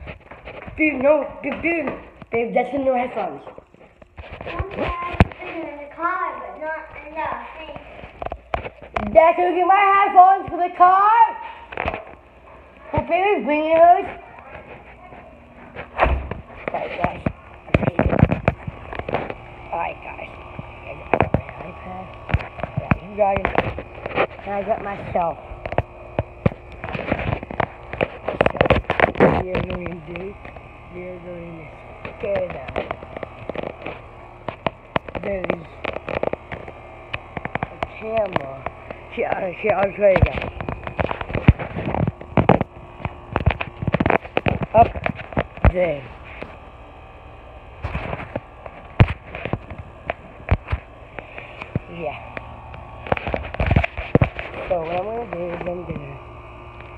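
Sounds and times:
phone rubbing and rustling: 0.0 - 2.3, 3.5 - 5.7, 7.8 - 9.2, 11.7 - 12.6, 13.7 - 56.9
low hum: 0.0 - 56.9
sharp clicks and knocks: 31.9 - 46.6, 47.8 - 56.0.

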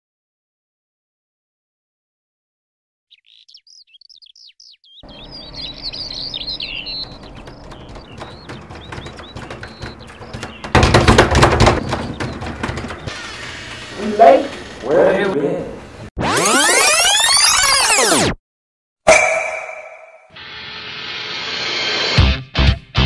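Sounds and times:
birds chirping: 3.1 - 16.1.

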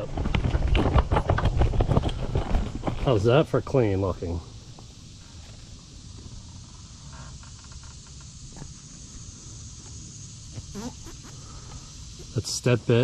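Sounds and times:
high insect drone: 0.0 - 13.0.

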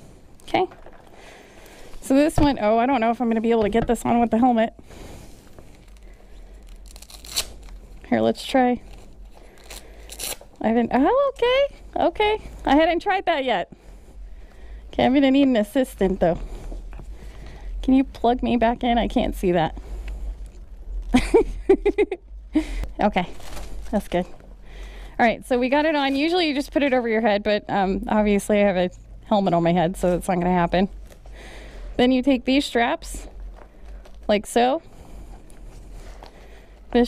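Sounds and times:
woman laughing: 21.1 - 22.9
fabric rustle: 23.1 - 24.4.

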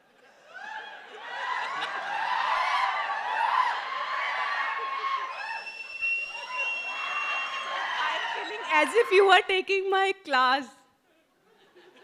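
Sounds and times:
people laughing and chattering: 0.0 - 9.5.

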